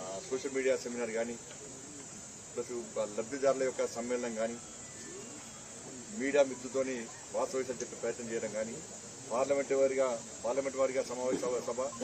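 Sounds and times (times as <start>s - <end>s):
steady high hiss: 0.0s - 12.0s
man speaking: 6.0s - 12.0s.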